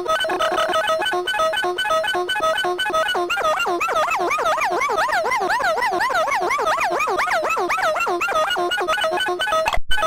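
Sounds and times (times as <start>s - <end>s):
buzzy electronic toy tone: 0.0s - 9.8s.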